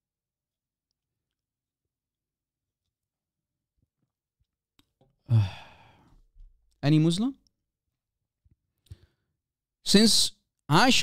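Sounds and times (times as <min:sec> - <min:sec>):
man sighing: 0:05.2 - 0:06.2.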